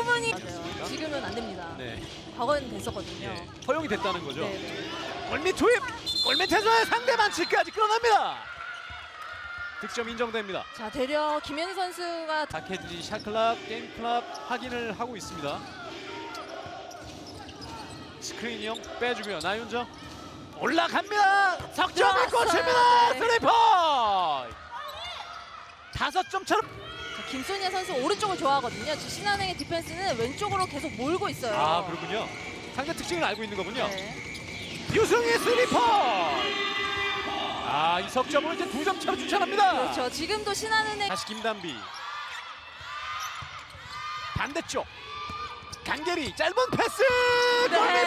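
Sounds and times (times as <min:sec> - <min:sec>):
indoor arena background noise: 0:00.0 - 0:48.0
commentator shouting excitedly: 0:20.6 - 0:24.3, 0:35.0 - 0:41.4, 0:46.4 - 0:48.0.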